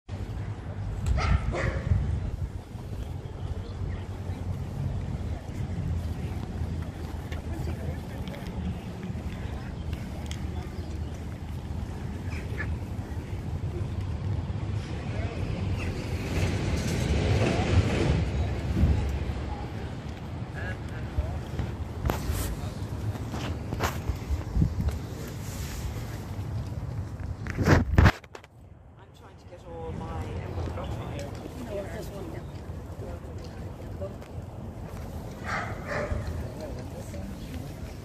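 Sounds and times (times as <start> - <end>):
wind rumbling on microphone: 0.2 - 29.0.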